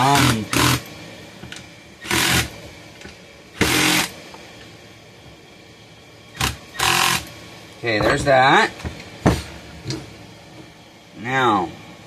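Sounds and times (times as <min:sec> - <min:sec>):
cordless drill driving screws: 0:00.1 - 0:00.8, 0:02.0 - 0:02.5, 0:03.6 - 0:04.1, 0:06.4 - 0:07.2.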